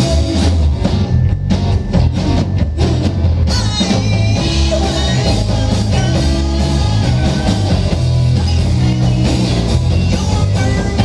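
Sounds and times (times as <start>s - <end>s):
rock band playing: 0.0s - 11.0s
person singing: 2.2s - 11.0s.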